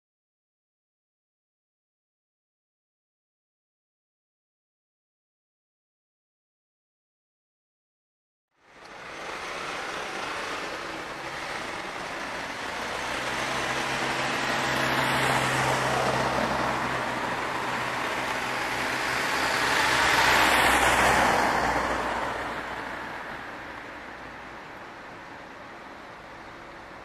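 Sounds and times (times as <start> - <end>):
heavy truck passing: 8.6 - 24.5
vehicles driving past: 8.6 - 27.0.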